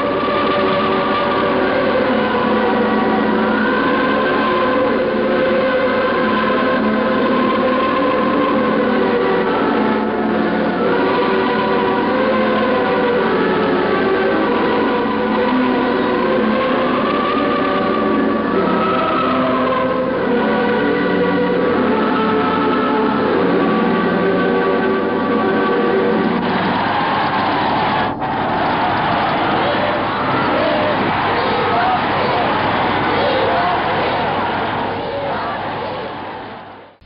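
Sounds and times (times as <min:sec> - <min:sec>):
crowd noise: 0:00.0 - 0:37.0
many voices singing together: 0:00.0 - 0:37.0.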